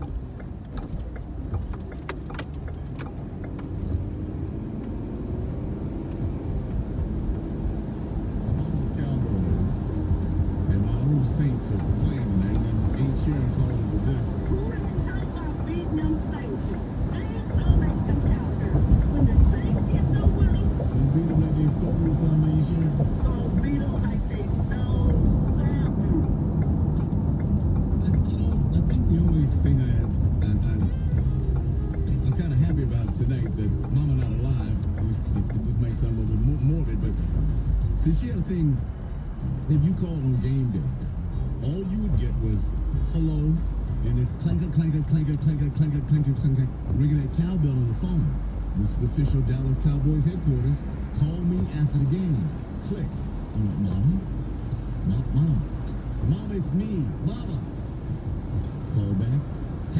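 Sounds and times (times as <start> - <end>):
car cabin rumble: 0.0 - 59.9
car radio talk and music: 0.0 - 59.9.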